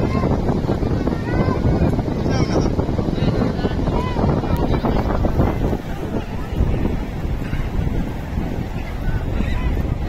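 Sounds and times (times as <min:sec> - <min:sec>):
surf washing onto beach: 0:00.0 - 0:10.0
wind buffeting microphone: 0:00.0 - 0:10.0.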